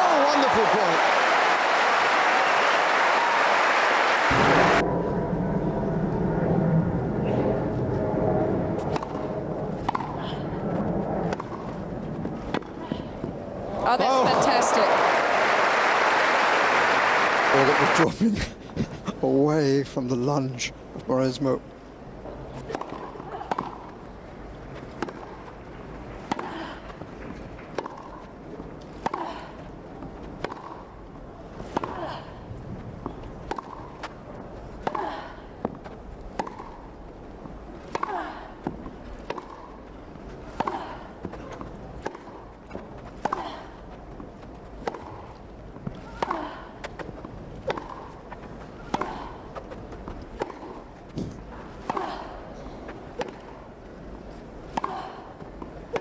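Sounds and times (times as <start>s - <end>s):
crowd applause: 0.0s - 4.8s, 13.8s - 18.1s
low crowd hum: 0.0s - 56.0s
tennis ball struck by rackets: 9.8s - 10.2s, 12.5s - 12.8s, 27.7s - 28.2s, 30.4s - 30.9s, 33.0s - 34.1s, 35.6s - 37.0s, 37.9s - 39.8s, 40.6s - 43.4s, 44.8s - 45.4s, 46.2s - 52.0s, 53.2s - 53.6s.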